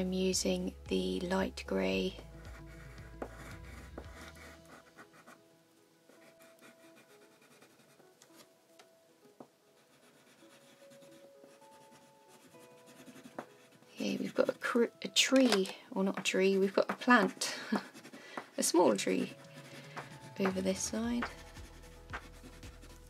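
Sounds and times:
crayon scratching on paper: 0:02.4 - 0:05.4, 0:06.1 - 0:08.0, 0:09.8 - 0:14.8, 0:16.1 - 0:23.0.

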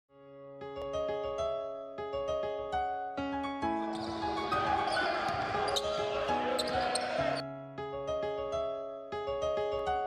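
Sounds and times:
soft piano music: 0:00.1 - 0:10.0
crowd noise in hall: 0:03.8 - 0:07.4
shoe squeaks: 0:03.8 - 0:07.4.

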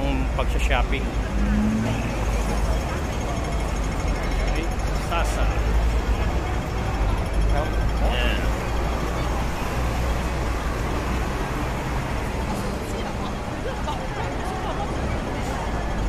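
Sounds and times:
pedestrians talking: 0:00.0 - 0:16.0
traffic rumble: 0:00.0 - 0:16.0.

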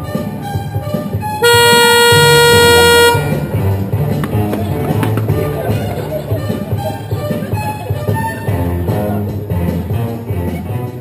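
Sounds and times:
music playing: 0:00.0 - 0:11.0
car horn blast: 0:01.4 - 0:03.9.

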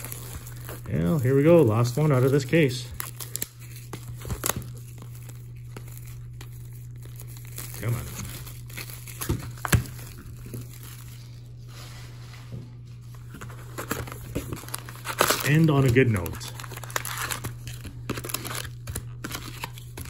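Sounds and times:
plastic shrink-wrap crinkling: 0:00.0 - 0:11.9, 0:13.0 - 0:20.0
steady low hum: 0:00.0 - 0:20.0.

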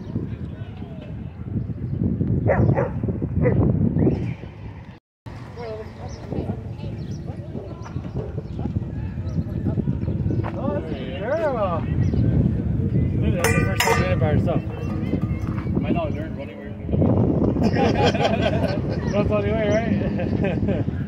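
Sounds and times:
park background noise: 0:00.0 - 0:21.0.

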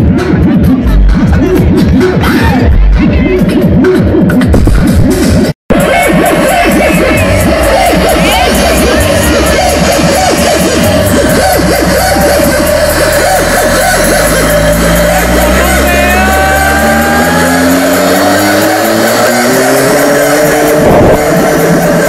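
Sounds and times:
electronic dance music: 0:00.0 - 0:22.0.

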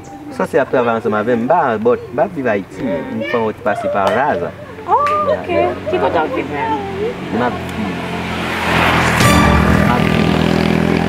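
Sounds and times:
vehicle passing by: 0:02.6 - 0:11.0.

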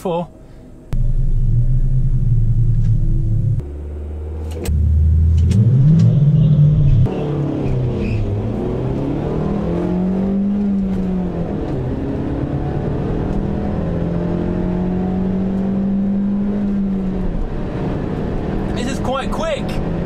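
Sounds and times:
car engine revving hard: 0:03.6 - 0:20.0.

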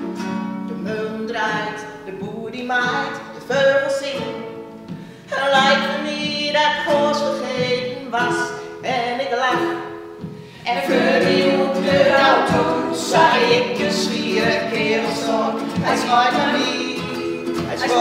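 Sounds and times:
strummed acoustic string instrument: 0:00.0 - 0:18.0
singers breathing: 0:04.9 - 0:05.3, 0:10.3 - 0:10.7
women singing together: 0:05.3 - 0:08.4, 0:10.6 - 0:18.0.

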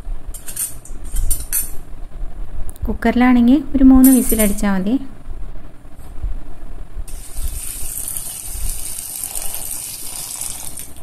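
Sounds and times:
water running: 0:07.1 - 0:11.0.

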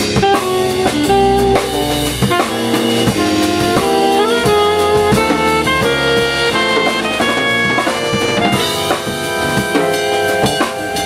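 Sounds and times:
alto saxophone melody: 0:00.0 - 0:11.0
drum kit: 0:00.0 - 0:11.0
electric bass: 0:00.0 - 0:11.0
keyboard: 0:00.0 - 0:11.0.

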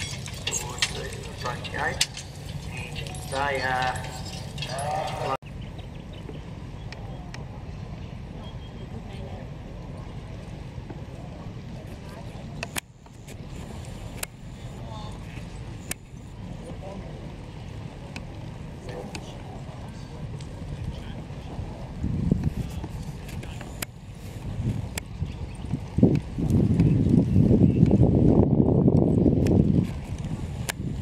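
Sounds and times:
harness chains clicking: 0:00.0 - 0:05.4
harrows dragging through soil: 0:00.0 - 0:05.4
horse hooves on soil: 0:00.0 - 0:05.4.

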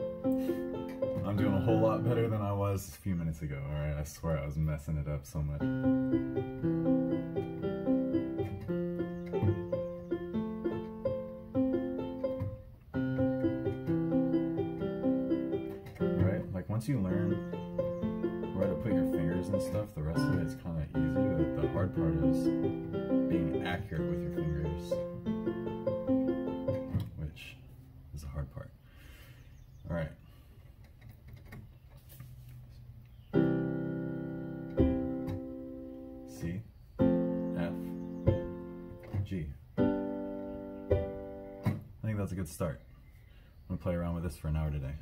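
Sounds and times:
electronic keyboard chords: 0:00.0 - 0:02.8, 0:05.5 - 0:27.4, 0:33.3 - 0:41.8.

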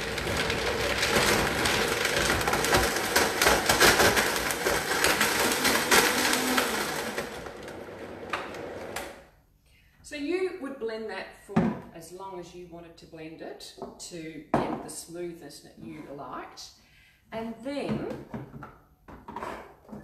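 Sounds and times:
blender running: 0:00.0 - 0:09.2.

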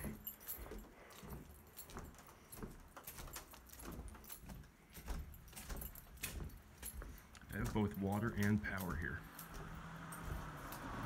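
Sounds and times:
footsteps on wooden boards: 0:00.0 - 0:11.0
light clicks and clinks: 0:00.0 - 0:11.0.

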